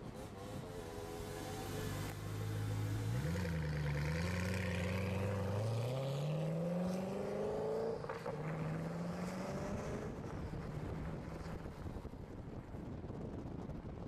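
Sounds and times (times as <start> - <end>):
car engine accelerating hard: 1.1 - 10.9.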